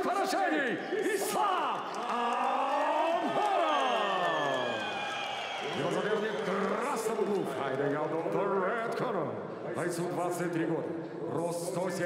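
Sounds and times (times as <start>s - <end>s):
crowd noise: 0.0s - 11.7s.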